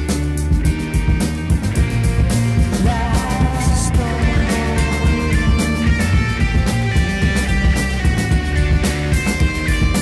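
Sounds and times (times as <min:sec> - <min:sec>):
blues-rock electric guitars: 0:00.0 - 0:10.0.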